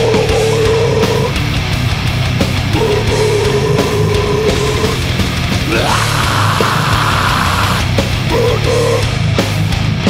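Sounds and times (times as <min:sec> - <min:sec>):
live death metal: 0:00.0 - 0:10.0.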